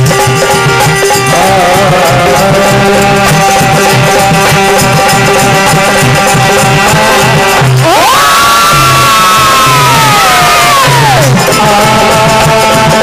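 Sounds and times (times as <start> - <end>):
devotional band music: 0.0 - 13.0
hand drums beating: 0.0 - 13.0.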